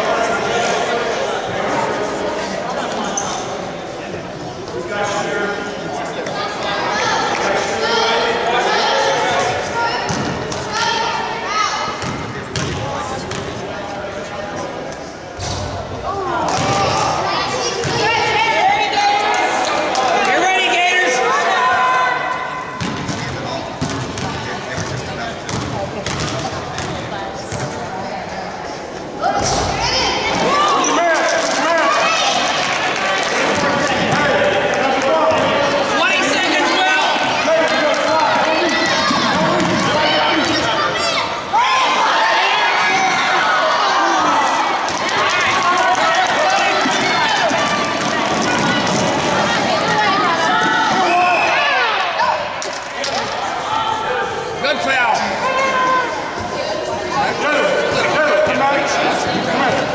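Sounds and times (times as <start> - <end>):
spectators shouting and cheering: 15.4 - 25.6, 29.1 - 59.9.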